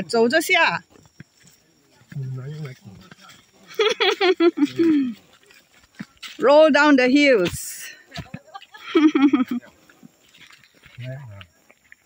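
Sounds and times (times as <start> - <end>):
person laughing: 3.7 - 5.2, 8.2 - 9.7.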